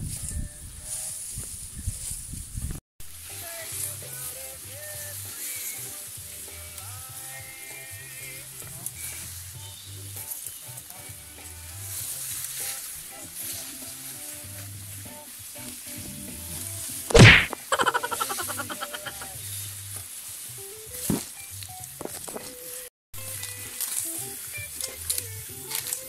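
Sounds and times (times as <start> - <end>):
grass and leaves brushing: 0.0 - 26.0.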